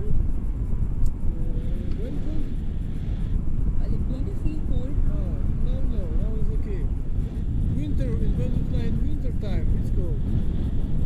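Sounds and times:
wind buffeting microphone: 0.0 - 11.0
muffled voices talking: 1.2 - 3.0, 3.6 - 10.5.

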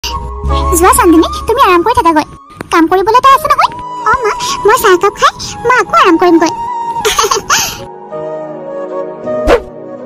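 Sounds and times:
background music with held notes: 0.0 - 10.0
high-pitched cartoon voice laughing: 7.0 - 7.6.

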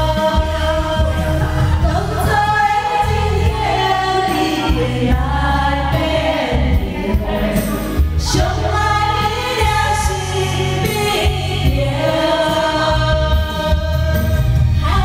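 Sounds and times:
karaoke backing track with bass: 0.0 - 15.0
women singing duet into microphones: 0.0 - 15.0.

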